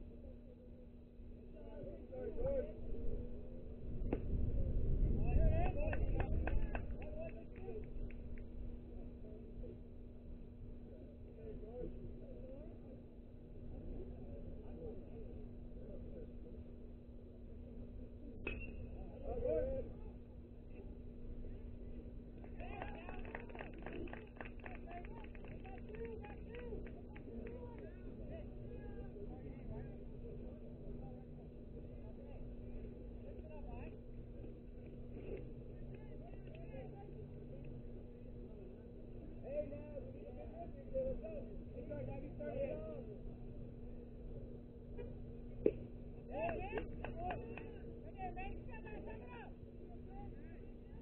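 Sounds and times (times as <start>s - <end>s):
steady low hum: 0.0s - 51.0s.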